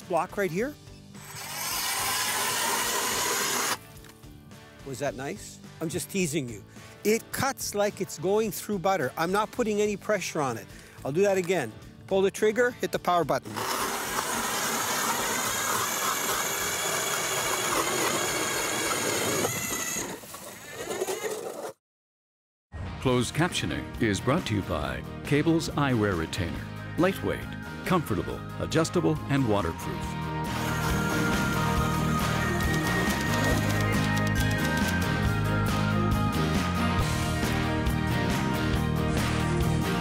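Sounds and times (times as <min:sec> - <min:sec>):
electric ice auger grinding: 0:01.2 - 0:03.8, 0:13.4 - 0:21.8, 0:30.4 - 0:35.2.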